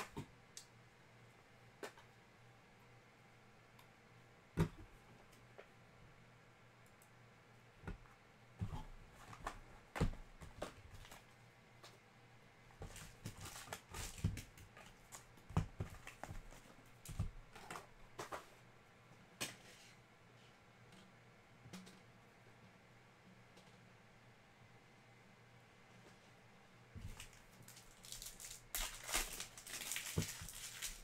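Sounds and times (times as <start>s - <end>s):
foil wrappers crinkling: 12.8s - 17.2s, 27.0s - 31.0s
packs tapping on table: 27.0s - 31.0s.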